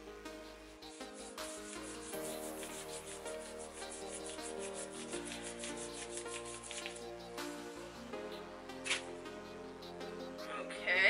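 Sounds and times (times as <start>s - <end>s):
background music with held chords: 0.0s - 11.0s
hand rubbing wax strip on skin: 1.5s - 7.3s.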